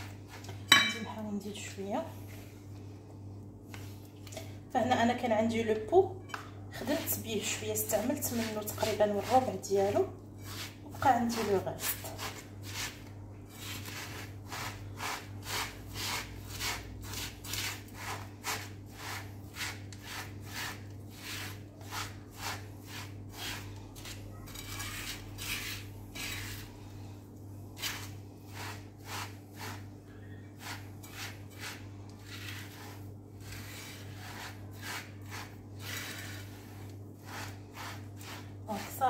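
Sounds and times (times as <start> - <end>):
steady low hum: 0.0 - 39.0
spatula scraping dough in pan: 6.8 - 26.8, 27.8 - 39.0.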